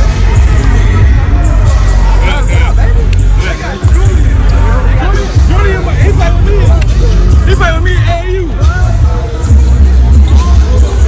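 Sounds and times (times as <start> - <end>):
crowd talking and calling out: 0.0 - 11.0
loud music with heavy bass: 0.0 - 11.0.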